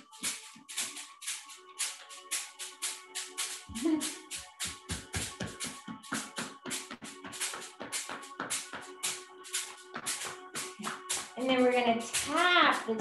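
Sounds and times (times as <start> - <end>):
background music: 0.0 - 13.0
hands tapping on lower back: 3.3 - 12.6.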